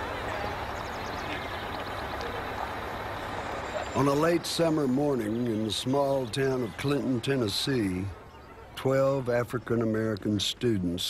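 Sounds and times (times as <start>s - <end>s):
bus engine rumble: 0.0s - 8.2s.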